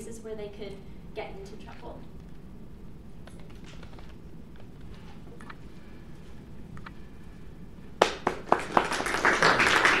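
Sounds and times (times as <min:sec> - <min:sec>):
audience applauding: 0:08.0 - 0:10.0.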